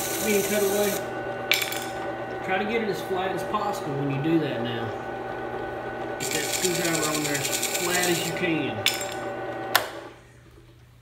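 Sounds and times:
whine of metal cutting: 0.0 - 10.1
drill press motor hum: 0.0 - 10.2.

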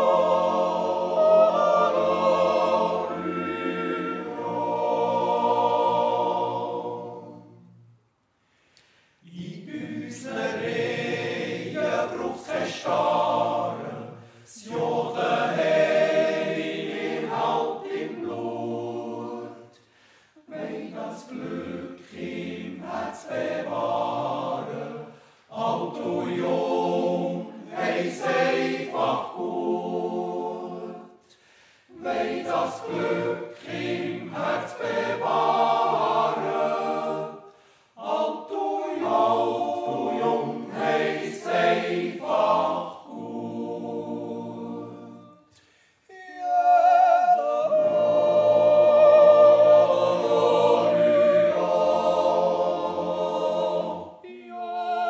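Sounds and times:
male choir yodelling a cappella: 0.0 - 7.6, 9.2 - 19.8, 20.4 - 31.2, 31.9 - 55.0.

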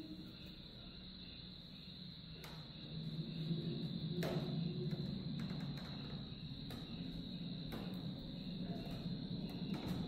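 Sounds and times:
insects chirping: 0.0 - 10.0.

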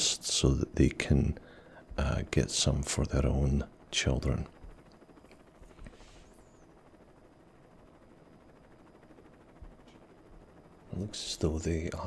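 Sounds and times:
faint room tone hiss: 0.0 - 12.0.

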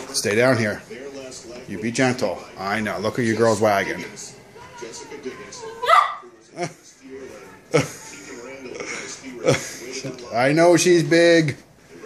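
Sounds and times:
puppy yapping: 5.8 - 6.2.

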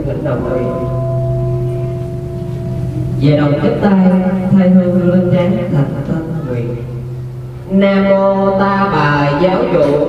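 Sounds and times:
bowl bell ringing: 0.0 - 10.0.

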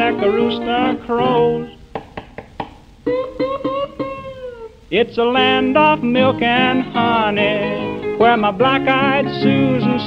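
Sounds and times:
person singing: 0.0 - 1.8, 3.1 - 10.0
guitar strums: 0.0 - 4.7.

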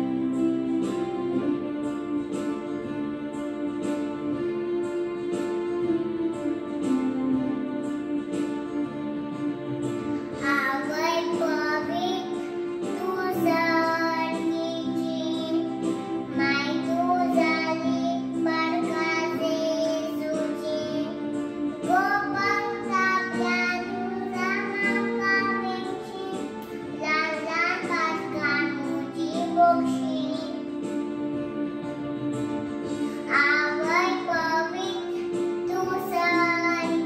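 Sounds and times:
instrumental accompaniment chords: 0.0 - 37.0
girl singing into microphone: 10.2 - 30.8, 32.9 - 37.0.

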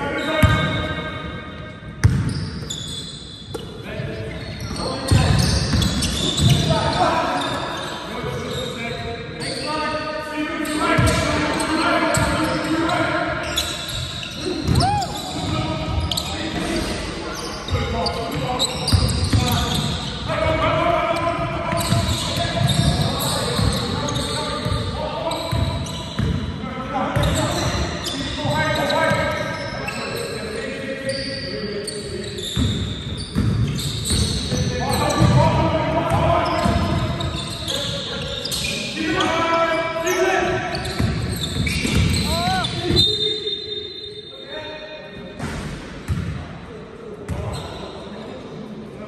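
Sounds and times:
basketball bouncing on court: 0.4 - 1.0, 1.9 - 2.9, 5.0 - 6.7, 11.0 - 11.4, 13.9 - 16.8, 21.2 - 26.6, 32.5 - 37.4, 40.7 - 43.0, 45.4 - 46.4, 47.3 - 47.6
players calling out: 10.6 - 26.2, 34.0 - 44.3.

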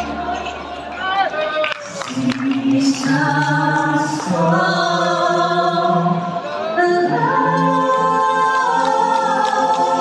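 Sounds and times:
vocal quartet singing in harmony: 2.1 - 10.0.

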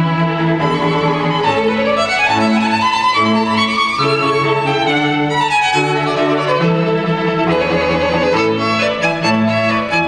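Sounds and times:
string ensemble playing bowed notes: 0.0 - 10.0.

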